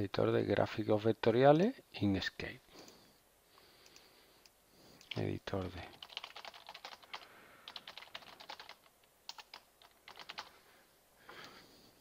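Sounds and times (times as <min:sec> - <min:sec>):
computer keyboard typing: 0:05.0 - 0:10.5.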